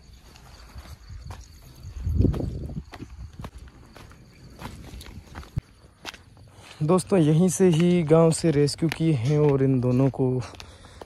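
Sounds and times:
crickets chirping: 0.0s - 11.0s
footsteps scuffing on sand: 0.0s - 11.0s.

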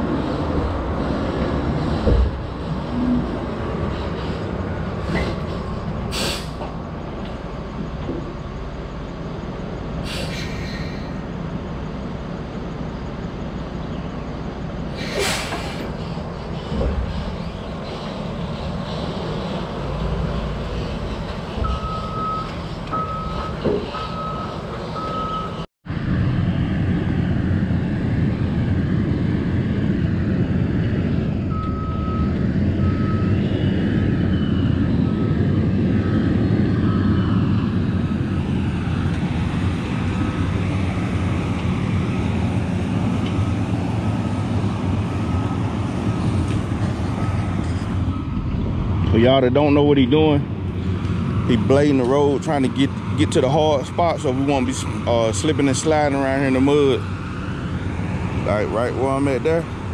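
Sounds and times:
diesel engine working: 0.0s - 59.9s
backup alarm beeping: 20.2s - 25.7s, 31.5s - 37.4s, 47.2s - 48.6s.

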